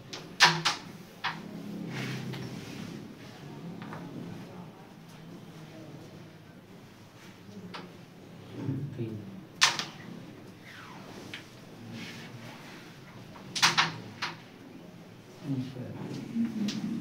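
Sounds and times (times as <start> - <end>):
carrom striker clacking pieces: 0.1 - 1.4
faint murmuring voices: 1.2 - 11.0, 14.5 - 17.0.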